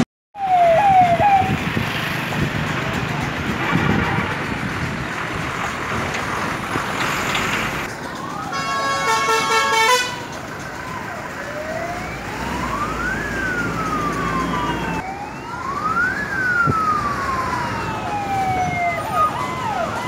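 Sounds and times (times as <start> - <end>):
traffic noise: 0.0 - 20.0
siren wailing: 0.4 - 1.6, 8.0 - 20.0
vehicle horn blast: 8.6 - 10.3.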